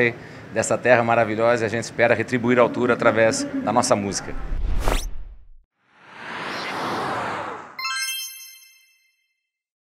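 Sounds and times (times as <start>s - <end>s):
whoosh: 3.0s - 7.8s
bright many-toned chime: 7.8s - 9.3s.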